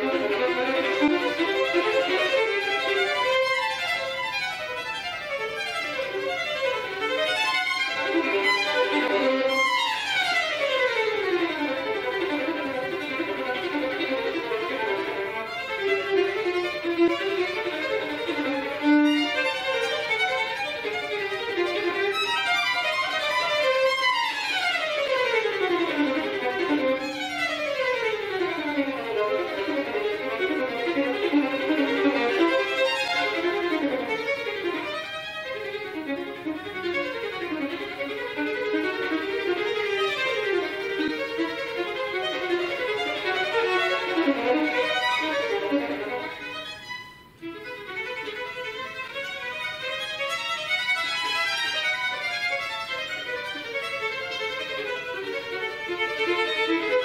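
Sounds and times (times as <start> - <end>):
solo violin playing: 0.0 - 57.0.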